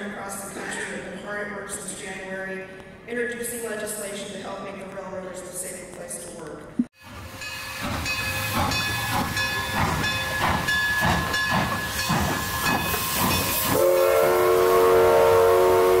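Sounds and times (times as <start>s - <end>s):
steam locomotive chuffing: 7.0s - 16.0s
multi-tone steam whistle: 11.9s - 16.0s.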